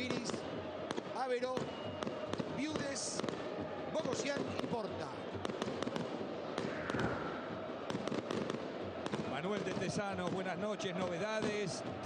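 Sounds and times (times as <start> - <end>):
fireworks and firecrackers banging: 0.0 - 12.0
stadium crowd noise: 0.0 - 12.0.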